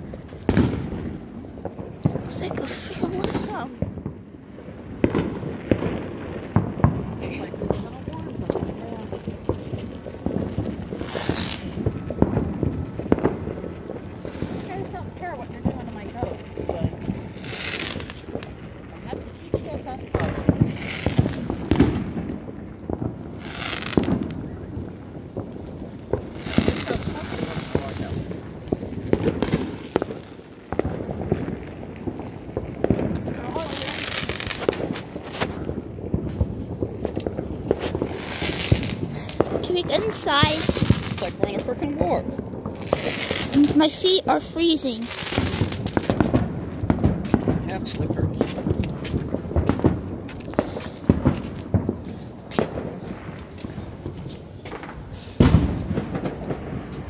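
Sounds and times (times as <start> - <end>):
firecrackers banging and crackling: 0.0 - 57.0
louder firework bursts: 0.0 - 57.0.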